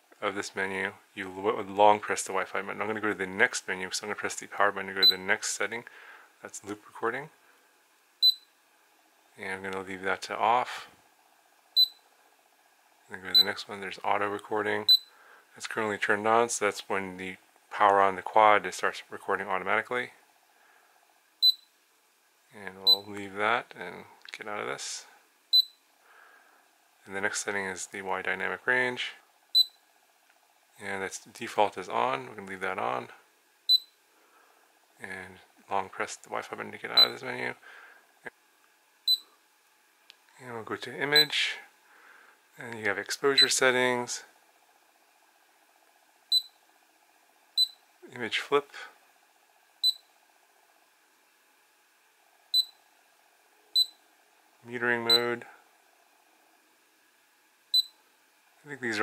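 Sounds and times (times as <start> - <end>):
faint background hum: 0.0 - 59.0
short high electronic beeps: 8.2 - 8.5, 21.4 - 21.7.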